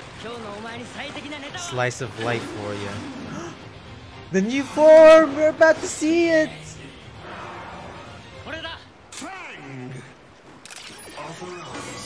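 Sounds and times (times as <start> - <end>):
sharp mechanical click: 10.6 - 11.0.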